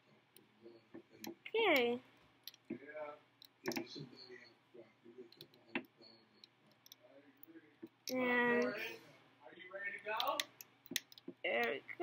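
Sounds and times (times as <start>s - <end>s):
faint murmur of voices: 2.7s - 10.4s.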